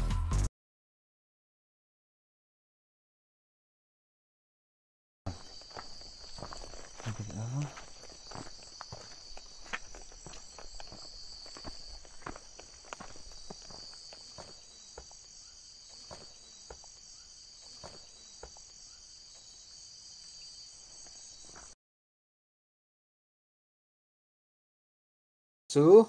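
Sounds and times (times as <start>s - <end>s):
footsteps on rough ground: 5.3s - 19.5s, 20.8s - 21.8s
crickets chirring: 5.3s - 21.8s.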